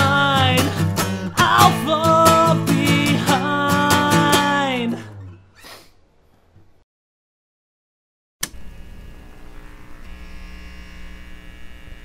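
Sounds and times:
switch click: 8.4s - 8.6s
neon sign electrical hum: 8.4s - 12.0s.

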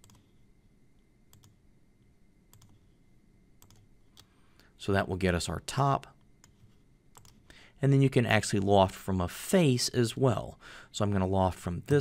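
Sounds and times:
computer mouse clicks: 0.0s - 0.4s, 1.3s - 1.6s, 2.5s - 2.8s, 3.6s - 4.4s, 6.2s - 7.6s.

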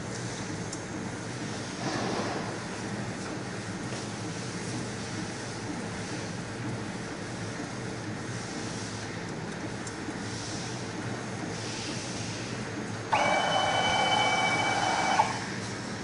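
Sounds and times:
printer mechanical hum: 0.0s - 16.0s
loud steady whine: 13.1s - 16.0s.

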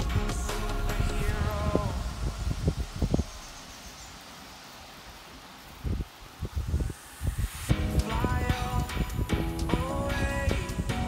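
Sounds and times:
rushing air hiss: 0.0s - 11.0s
wind buffeting microphone: 0.1s - 3.8s, 5.7s - 11.0s.

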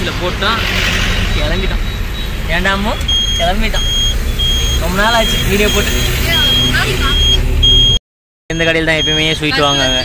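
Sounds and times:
vehicle engine and road rumble: 0.0s - 10.0s
high electronic beeps: 0.6s - 10.0s
voices: 4.7s - 7.4s, 8.5s - 10.0s.

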